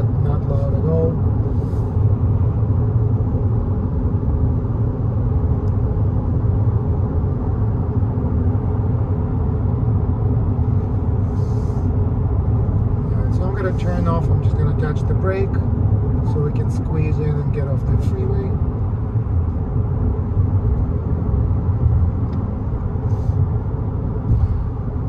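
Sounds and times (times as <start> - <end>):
man talking: 0.0 - 1.2, 13.0 - 15.6, 16.2 - 18.6
faint car engine: 0.0 - 25.0
road and tyre rumble: 0.0 - 25.0
wind noise: 19.1 - 25.0.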